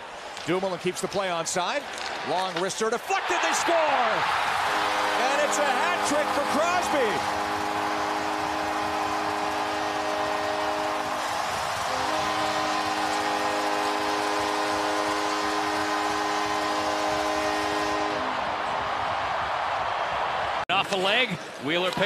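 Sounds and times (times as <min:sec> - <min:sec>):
crowd cheering: 0:00.0 - 0:22.0
goal horn blasts: 0:03.3 - 0:18.8.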